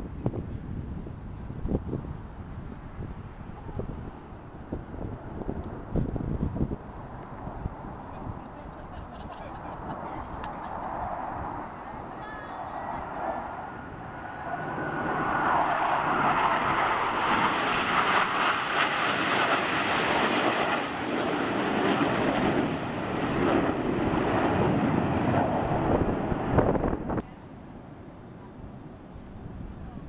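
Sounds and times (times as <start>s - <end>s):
jets flying overhead: 0.0s - 30.0s.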